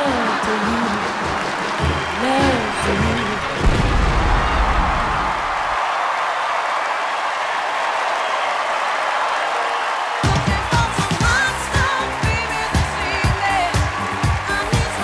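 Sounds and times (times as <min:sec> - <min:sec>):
pop song with singing: 0:00.0 - 0:03.9, 0:10.2 - 0:15.0
audience applauding and cheering: 0:00.0 - 0:15.0.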